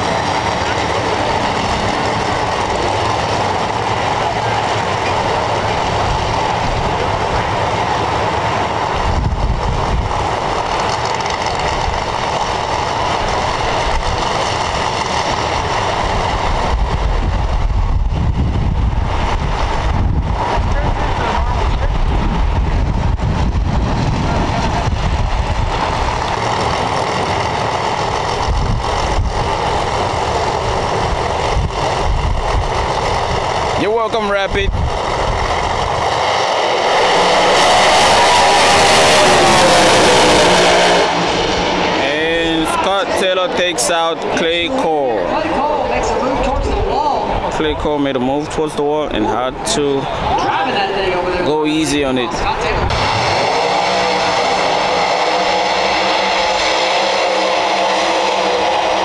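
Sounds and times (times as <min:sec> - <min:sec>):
drag race car engines: 0:00.0 - 0:59.0
cars launching at full throttle: 0:18.1 - 0:46.3, 0:52.7 - 0:59.0.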